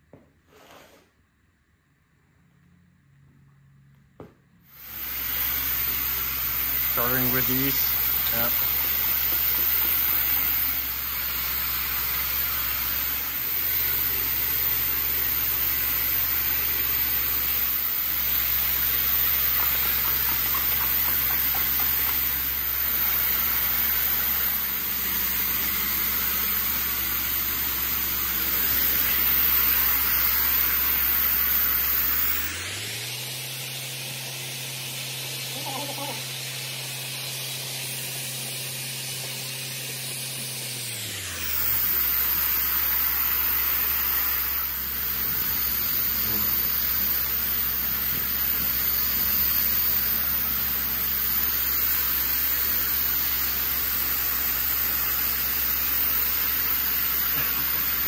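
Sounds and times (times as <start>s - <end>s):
steady machine hum: 4.6s - 58.0s.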